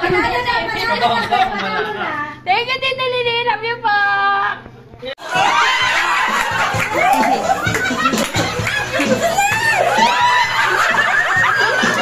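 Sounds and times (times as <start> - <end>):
group of people laughing: 0.8 - 2.2, 5.2 - 12.0.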